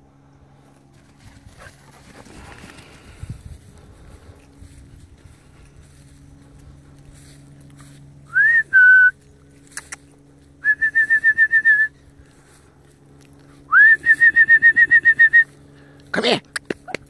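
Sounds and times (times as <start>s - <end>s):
person whistling to dogs: 8.3s - 9.2s, 10.6s - 11.9s, 13.7s - 15.5s.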